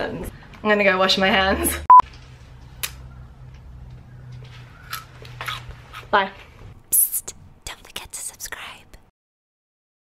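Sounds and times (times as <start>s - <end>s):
person whispering: 6.9s - 9.1s.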